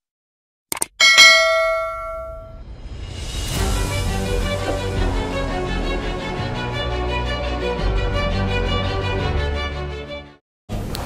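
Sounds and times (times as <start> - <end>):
notification bell chime: 1.0 - 2.6.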